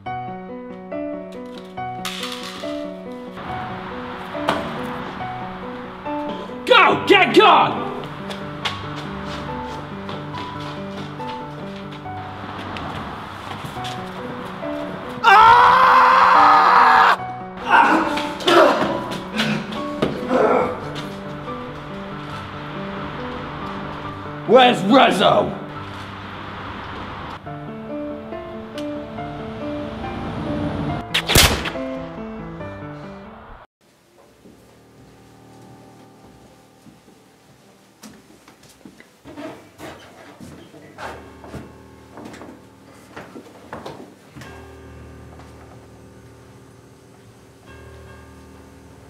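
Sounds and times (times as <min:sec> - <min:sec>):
soft background music: 0:00.0 - 0:49.0
person screaming: 0:15.2 - 0:19.0
loud pistol shot: 0:31.2 - 0:31.8.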